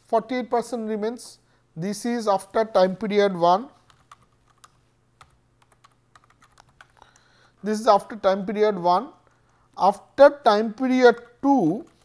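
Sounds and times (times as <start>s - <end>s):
faint keyboard typing: 3.7s - 7.7s, 11.0s - 12.0s.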